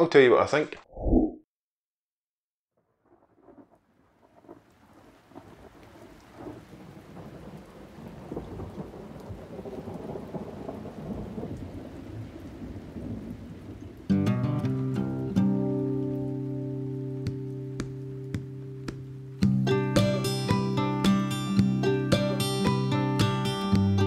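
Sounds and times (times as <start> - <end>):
music with plucked guitar chords: 14.1 - 24.0.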